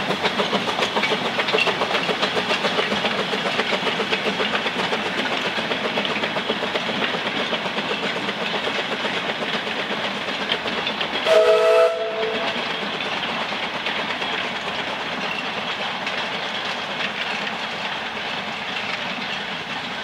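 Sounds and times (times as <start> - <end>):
rail clatter: 0.0 - 20.0
steam locomotive chuffing: 0.0 - 20.0
steam whistle blast: 11.3 - 12.6.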